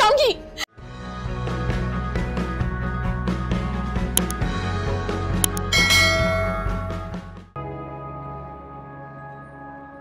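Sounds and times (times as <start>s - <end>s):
background music with steady beat: 0.8s - 7.8s
button click: 5.4s - 5.7s
bright bell chime: 5.7s - 7.0s.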